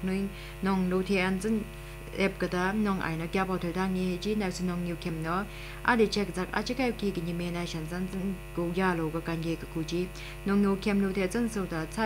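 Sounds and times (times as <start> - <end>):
electrical mains hum: 0.0 - 12.0
newsreader speaking: 0.0 - 12.0.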